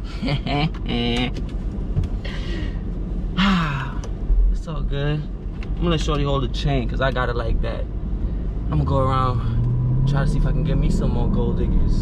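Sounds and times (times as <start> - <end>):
man laughing: 0.0 - 0.8
low steady car cabin drone: 0.0 - 12.0
breathy exhales: 2.2 - 2.8.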